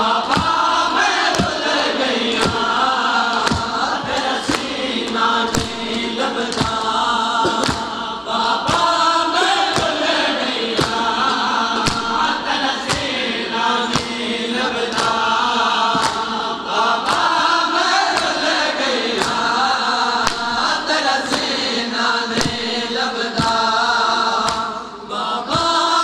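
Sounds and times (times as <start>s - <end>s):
voices chanting: 0.0s - 26.0s
hands slapping chests: 0.2s - 9.0s, 9.6s - 19.6s, 20.2s - 21.6s, 22.3s - 23.8s, 24.4s - 24.8s.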